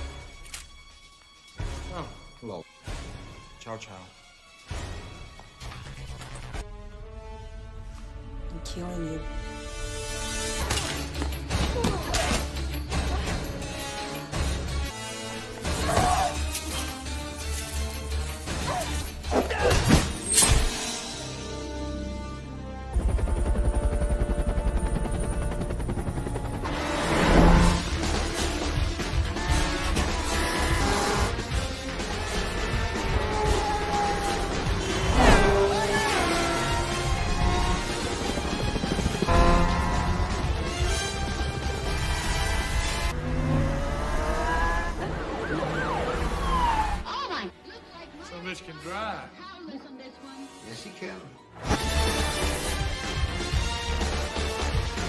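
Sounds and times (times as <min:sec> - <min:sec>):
dramatic music: 0:00.0 - 0:55.0
sirens wailing: 0:32.2 - 0:47.1
car noise: 0:39.3 - 0:47.0.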